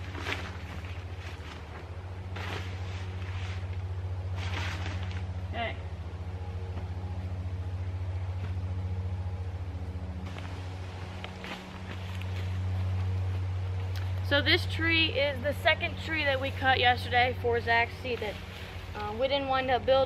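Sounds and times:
low engine-like hum: 0.0s - 20.0s.

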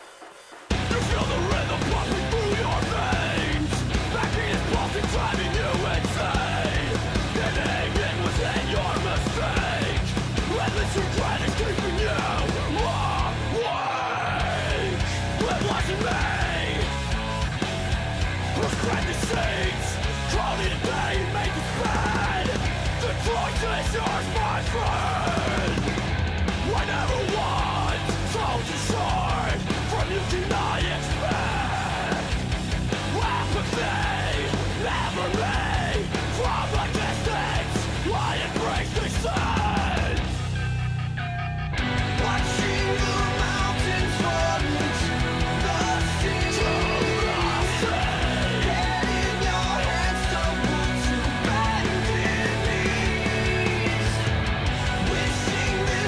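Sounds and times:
drums: 0.0s - 56.0s
heavy distorted guitars: 0.0s - 56.0s
screamed lead vocal: 0.7s - 56.0s.

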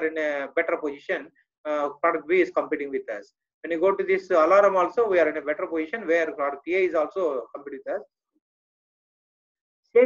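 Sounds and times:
man speaking: 0.0s - 8.1s.

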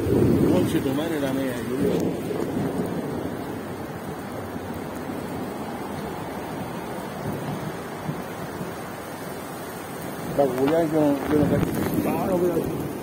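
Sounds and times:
rain on a wet street: 0.0s - 13.0s.

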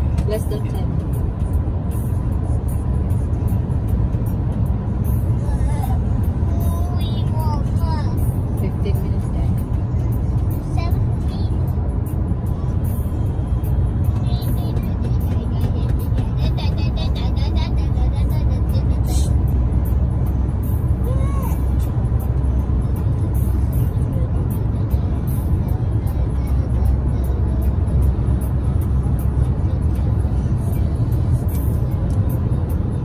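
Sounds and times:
car road and tyre rumble: 0.0s - 33.0s
music in car: 0.0s - 33.0s.

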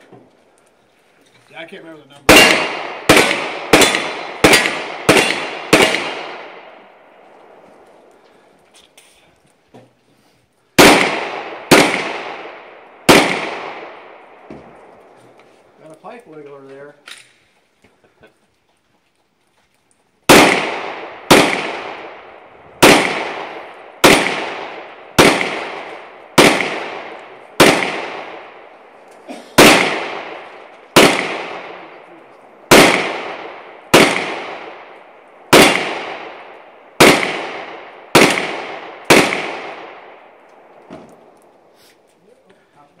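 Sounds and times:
pistol shots with echo: 2.2s - 7.6s, 10.8s - 15.0s, 20.3s - 29.0s, 29.6s - 41.4s.

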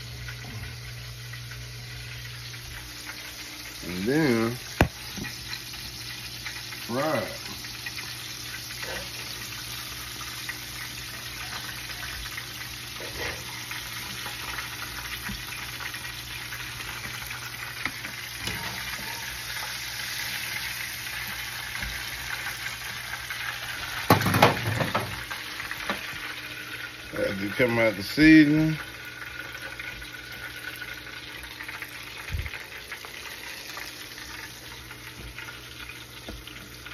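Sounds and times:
fish deep-frying in hot oil: 0.0s - 36.9s
wire skimmer in a pan: 0.0s - 36.9s.

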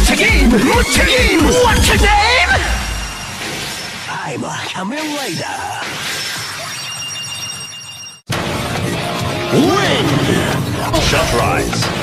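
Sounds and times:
high ringing tones: 2.3s - 4.2s, 6.0s - 8.3s.

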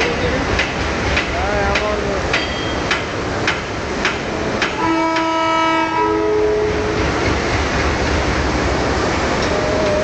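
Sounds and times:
rail noise rumble: 0.0s - 10.0s
train horn chord: 4.8s - 7.0s.

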